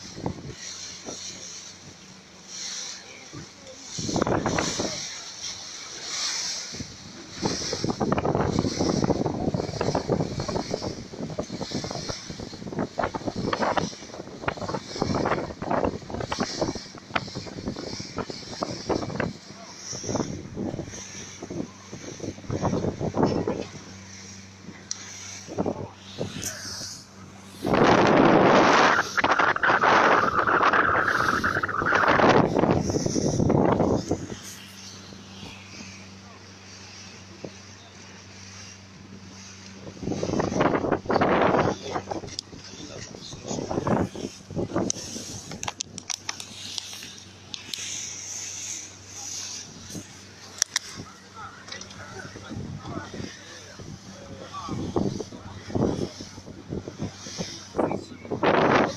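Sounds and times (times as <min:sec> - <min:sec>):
boat engine drone: 0:00.0 - 0:58.9
water rushing past hull: 0:00.0 - 0:58.9
wind buffeting microphone: 0:00.0 - 0:58.9.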